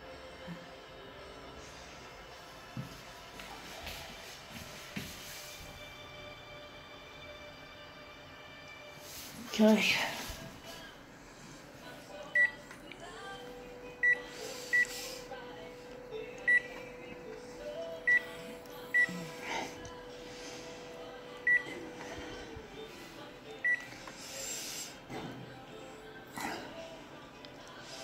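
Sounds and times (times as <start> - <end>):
steady machine hum: 10.0 - 28.0.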